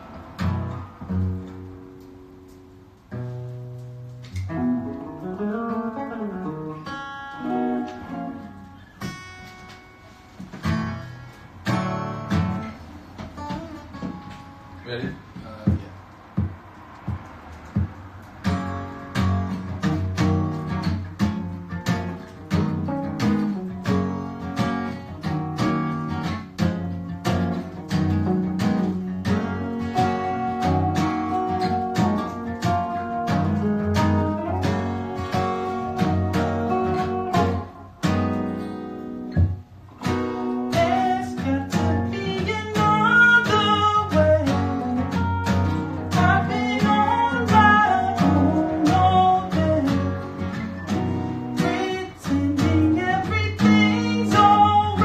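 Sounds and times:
sliding guitar melody: 0.0 - 15.4, 16.4 - 55.0
guitars strumming chords: 0.0 - 55.0.

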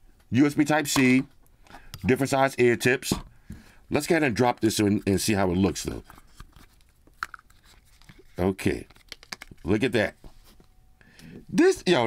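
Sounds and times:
plastic case clicking and rubbing: 6.1 - 9.6.

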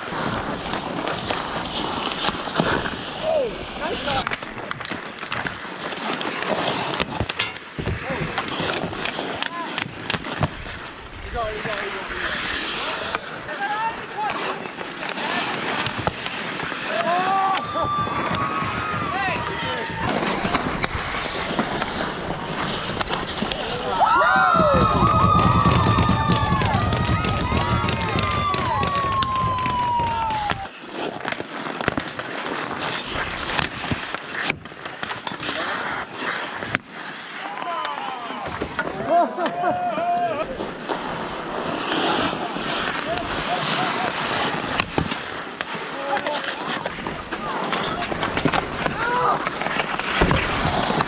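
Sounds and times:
sharp crack: 0.0 - 13.6, 14.2 - 39.0, 40.8 - 51.0
hockey sticks clacking: 0.0 - 51.0
skate blades scraping ice: 0.0 - 51.0
stick clacking on puck: 4.2 - 10.6
players shouting: 16.8 - 20.9, 23.5 - 30.7, 37.4 - 40.6.

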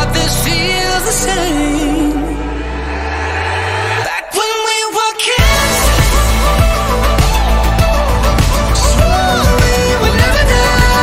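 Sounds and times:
person singing: 0.0 - 3.0, 4.0 - 11.0
background music with bass: 0.0 - 11.0.

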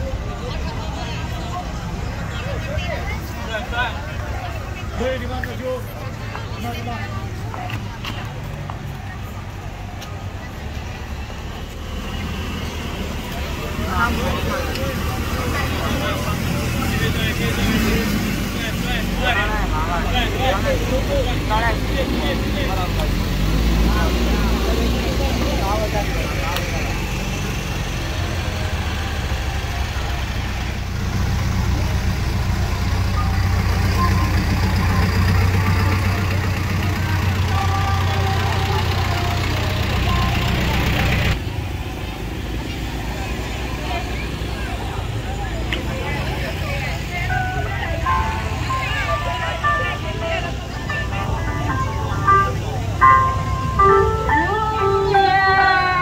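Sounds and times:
vehicle engine humming: 0.0 - 56.0
voices: 0.0 - 56.0
melodic tune from loudspeakers: 47.1 - 56.0.

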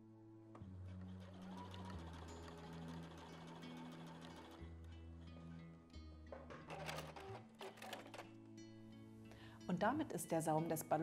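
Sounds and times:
soft background music: 0.0 - 11.0
sewing machine stitching: 1.1 - 4.6, 6.7 - 8.4.

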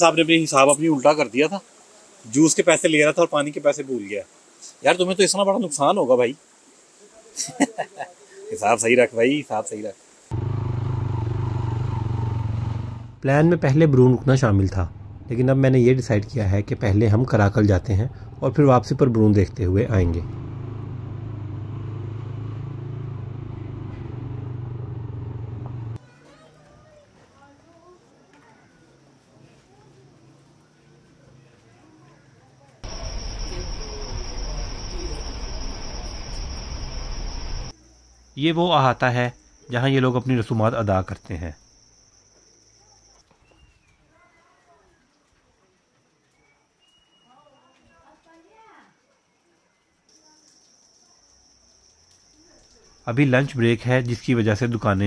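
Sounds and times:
insects chirring: 0.0 - 12.2, 32.8 - 43.3, 50.1 - 55.0
vehicle engine running: 10.3 - 13.2, 18.1 - 26.0, 32.8 - 37.7
faint distant voices: 26.0 - 36.5.

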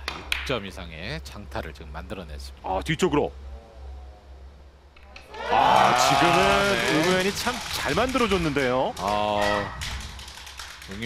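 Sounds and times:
man's drawn-out exclamation: 5.3 - 7.1.

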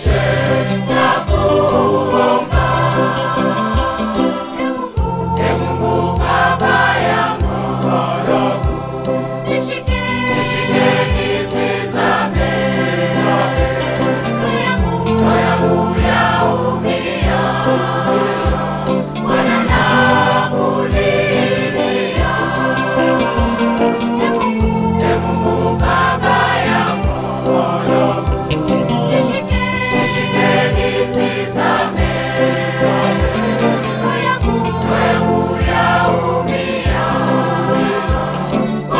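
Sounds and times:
choir singing a hymn: 0.0 - 38.9.

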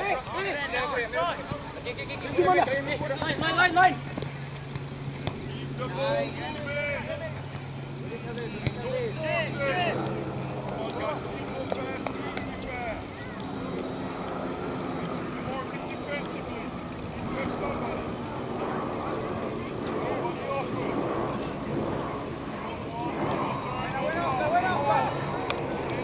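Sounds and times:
steady low hum: 1.2 - 26.0.

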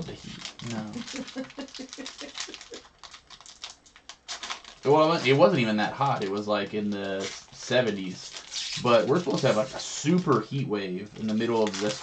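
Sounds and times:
person speaking: 0.0 - 2.8, 4.8 - 12.0
foil wrapper crinkling: 0.0 - 12.0.

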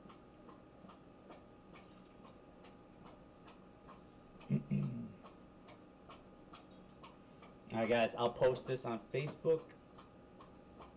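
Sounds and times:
faint steady ticking: 0.0 - 10.9
man clearing his throat: 4.5 - 5.2.

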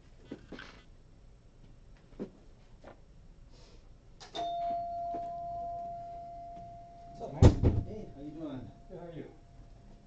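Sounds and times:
bell-like chime: 4.4 - 7.4
loud knock: 7.4 - 8.0.

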